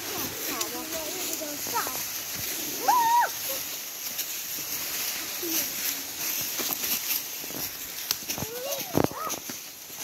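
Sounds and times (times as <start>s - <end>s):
dry leaves and sticks rustling: 0.0s - 10.0s
child calling out: 2.8s - 3.7s, 8.4s - 9.5s.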